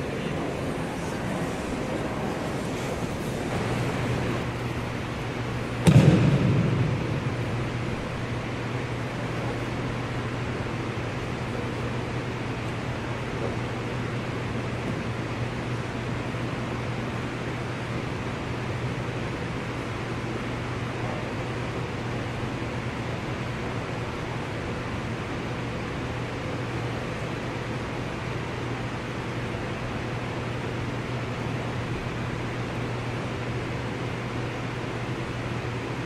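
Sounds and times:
low hum: 0.0s - 11.6s
ventilation rushing: 0.0s - 16.8s.

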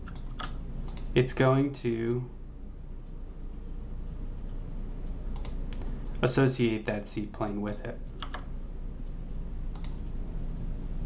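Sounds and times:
computer mouse clicking: 0.0s - 1.1s, 5.3s - 5.9s, 7.0s - 8.5s, 9.7s - 10.1s
low steady hum: 0.0s - 11.0s.

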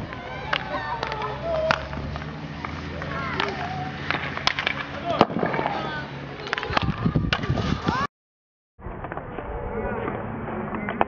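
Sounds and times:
hockey sticks hitting balls: 0.0s - 8.1s.

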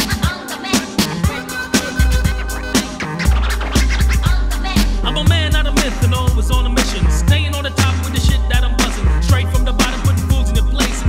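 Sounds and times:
hip hop drum beat with heavy bass: 0.0s - 11.0s
turntable scratching: 0.0s - 11.0s.

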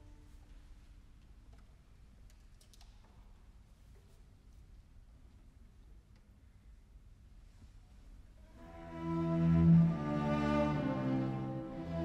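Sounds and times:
faint small clicks: 1.2s - 3.4s.

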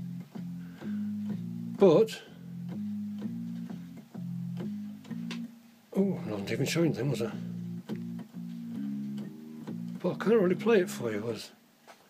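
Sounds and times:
organ keyboard riff: 0.0s - 5.6s, 6.2s - 11.4s.

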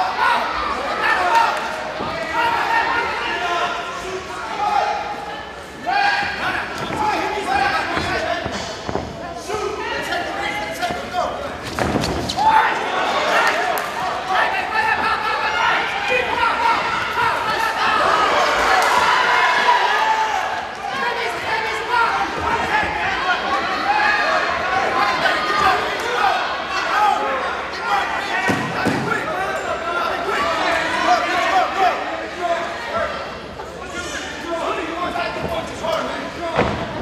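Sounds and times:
crowd shouting: 0.0s - 8.7s, 12.2s - 37.0s.

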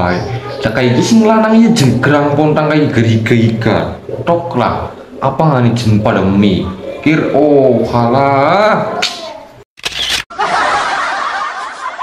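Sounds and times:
crowd laughing: 10.3s - 12.0s.

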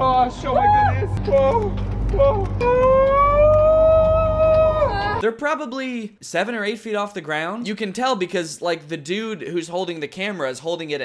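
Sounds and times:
low rumble: 0.0s - 5.2s.

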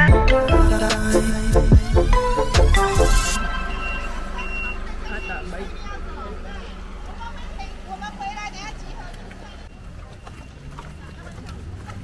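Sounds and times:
bus engine driving off: 0.0s - 12.0s
high-pitched warning beeper: 0.4s - 8.1s.

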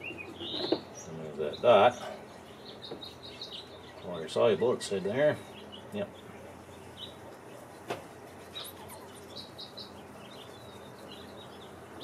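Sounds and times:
faint birds chirping: 0.0s - 12.0s.

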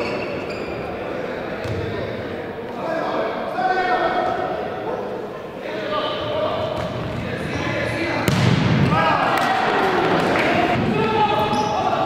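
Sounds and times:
players shouting in hall: 8.0s - 12.0s
ball struck hard: 8.2s - 9.0s.

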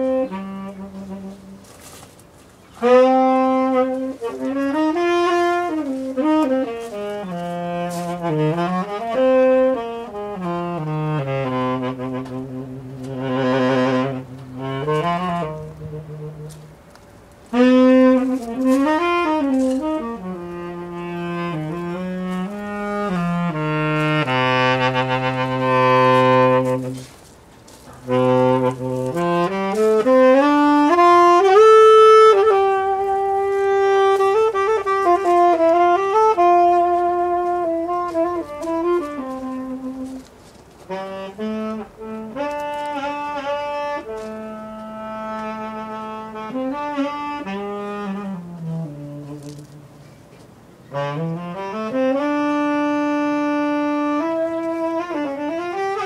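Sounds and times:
solo saxophone melody: 0.0s - 56.0s.

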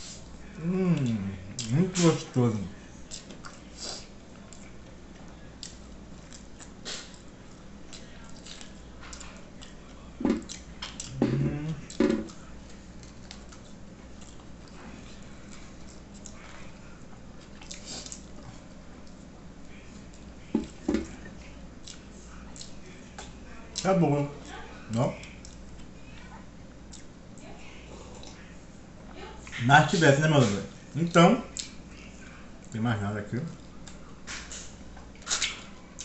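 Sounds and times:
wet chewing and sucking: 5.6s - 7.3s, 33.8s - 36.0s
lip smacks and clicks: 31.5s - 31.8s, 33.8s - 35.8s.

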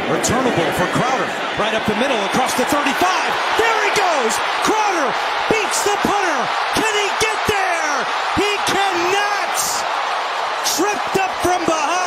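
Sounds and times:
stadium crowd roar: 0.0s - 12.0s
announcer shouting: 1.6s - 9.9s, 10.6s - 12.0s.

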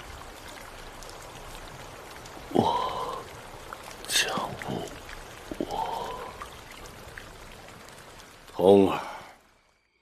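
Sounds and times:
steady rain falling: 0.0s - 10.0s.

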